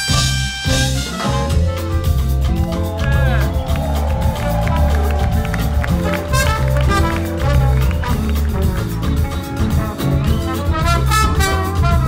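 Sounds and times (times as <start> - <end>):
drums: 0.0 - 12.0
horn section: 0.0 - 12.0
jazz-funk band playing: 0.0 - 12.0
electric bass line: 2.0 - 12.0.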